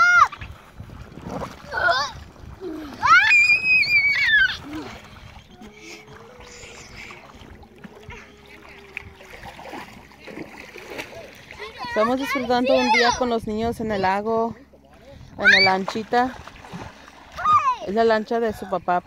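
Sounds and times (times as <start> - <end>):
child shrieking: 0.0 - 0.3, 2.8 - 5.0, 7.9 - 9.3
water splashing: 0.0 - 13.3, 14.0 - 19.0
water sloshing: 0.0 - 19.0.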